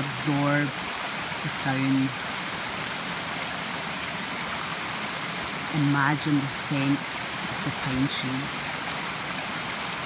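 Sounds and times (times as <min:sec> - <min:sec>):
stream rushing over rocks: 0:00.0 - 0:10.0.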